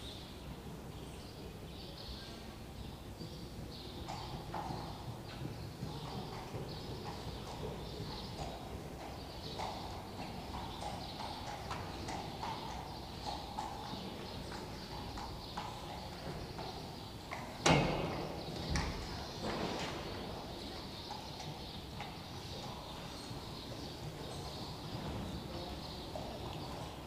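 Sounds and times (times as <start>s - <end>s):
horse hoofbeats on sand: 3.2s - 27.0s.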